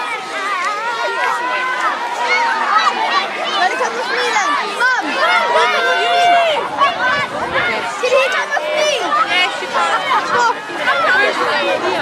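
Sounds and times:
children shouting: 0.0s - 12.0s.

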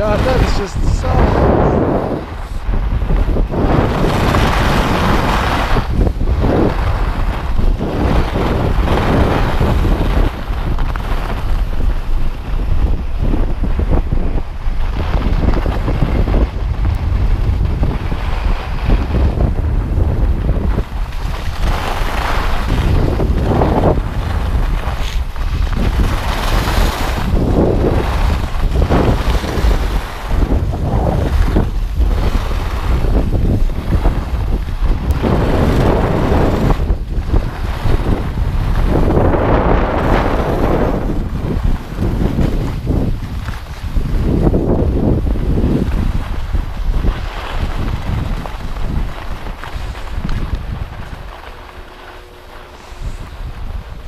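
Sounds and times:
skis scraping on packed snow: 0.0s - 54.0s
wind buffeting microphone: 0.0s - 54.0s.

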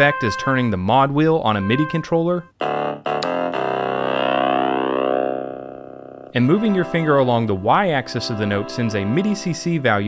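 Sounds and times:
synth notes: 1.6s - 7.8s.

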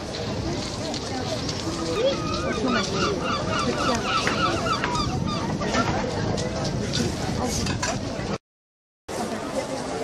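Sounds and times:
outdoor background noise: 0.0s - 8.4s, 9.1s - 10.0s
herring gull calling: 2.0s - 5.6s.

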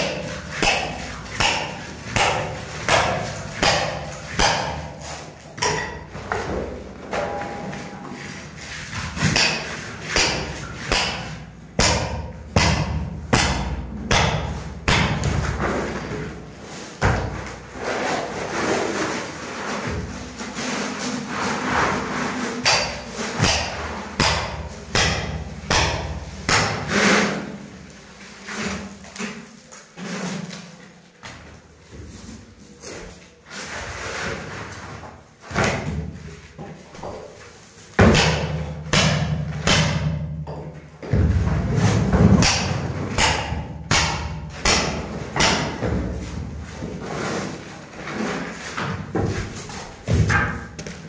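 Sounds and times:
sheet scraping on concrete floor: 0.0s - 11.6s, 14.5s - 25.6s, 26.2s - 38.1s, 41.1s - 43.2s, 44.5s - 51.0s
rough scraping on concrete: 15.5s - 24.1s, 26.8s - 31.0s, 46.2s - 49.9s.

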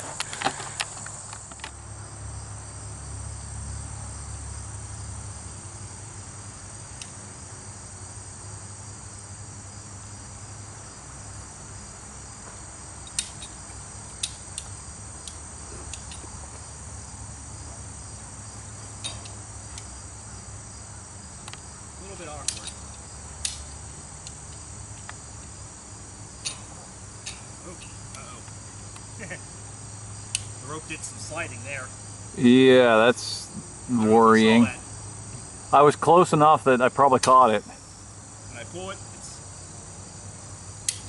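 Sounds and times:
high-pitched insect chorus: 0.0s - 41.0s.

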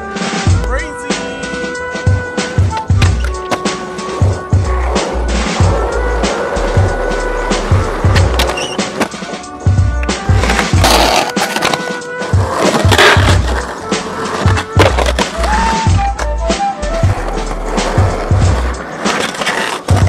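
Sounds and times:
music with steady beat: 0.0s - 20.0s
skateboard trucks grinding: 1.4s - 20.0s
skateboard wheels rolling and clacking: 2.1s - 20.0s.

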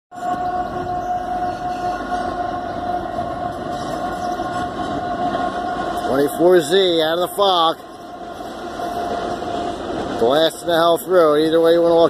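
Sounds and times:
locomotive air horn: 0.1s - 9.8s
train rumble: 0.1s - 12.0s.

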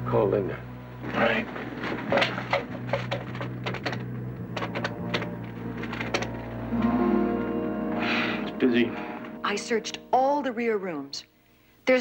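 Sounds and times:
music: 0.0s - 11.6s.

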